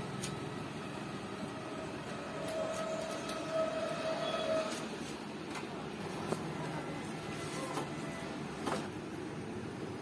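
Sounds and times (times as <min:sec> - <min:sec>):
background whine and hum: 0:00.0 - 0:10.0.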